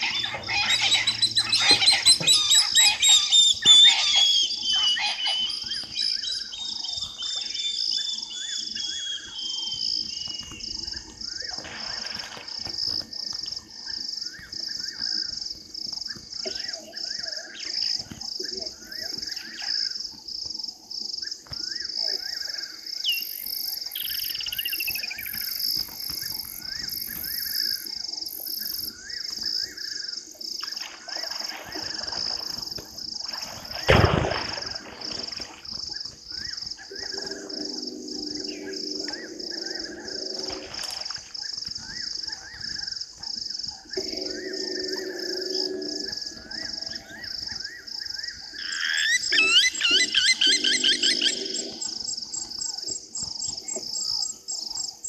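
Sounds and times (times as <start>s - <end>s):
frogs croaking: 0.0s - 55.0s
high pulsing insect call: 0.0s - 55.0s
rapid loud chirps: 49.1s - 52.3s.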